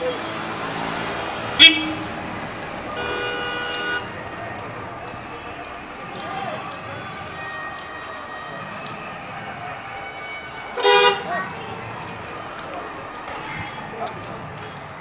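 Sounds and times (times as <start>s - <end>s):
road and traffic noise: 0.0s - 15.0s
vehicle horn toot: 1.6s - 2.0s, 2.9s - 4.1s, 10.8s - 11.3s.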